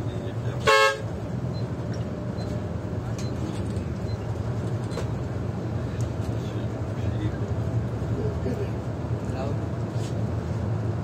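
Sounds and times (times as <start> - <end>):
bus engine rumble: 0.0 - 11.0
road noise: 0.0 - 11.0.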